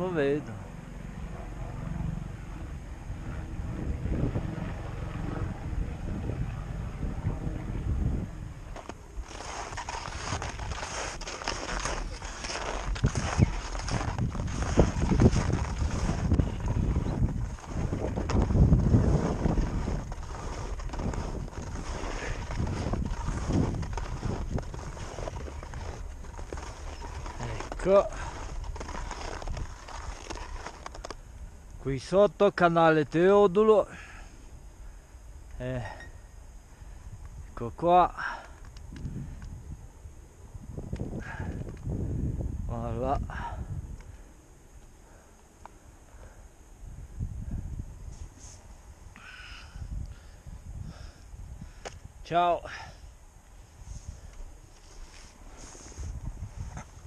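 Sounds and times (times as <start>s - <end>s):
wind rumbling on microphone: 0.0s - 32.1s, 33.8s - 57.0s
skis scraping on snow: 8.7s - 31.2s, 53.6s - 57.0s.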